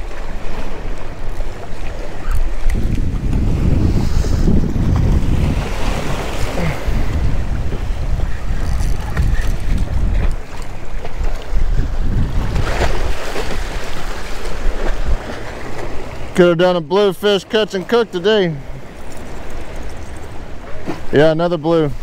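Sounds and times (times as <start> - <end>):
wind buffeting microphone: 0.0 - 16.3
waves washing against rocks: 0.0 - 22.0.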